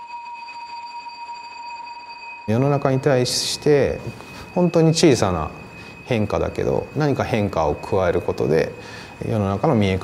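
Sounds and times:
steady high-pitched tones: 0.0s - 10.0s.

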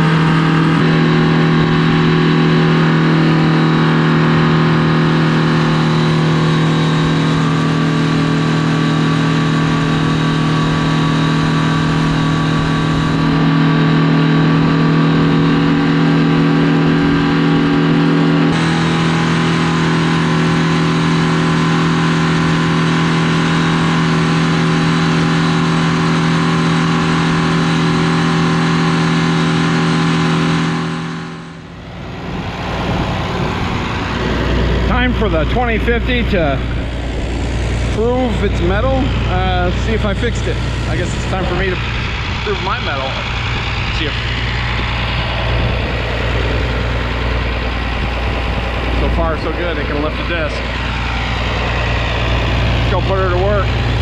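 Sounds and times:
diesel tractor engine idling: 0.0s - 54.0s
diesel tractor engine running: 0.0s - 54.0s.

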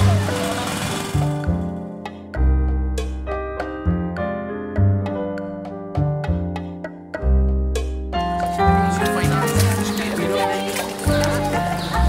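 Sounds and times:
deep bass notes: 0.0s - 10.3s.

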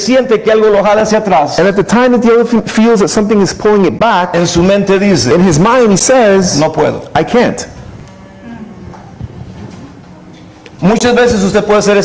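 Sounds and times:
soft droning hum: 3.3s - 12.0s.

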